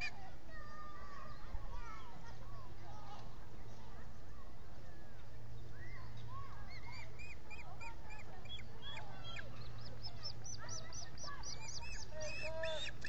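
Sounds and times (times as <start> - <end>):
young ospreys chirping: 6.7 - 13.0.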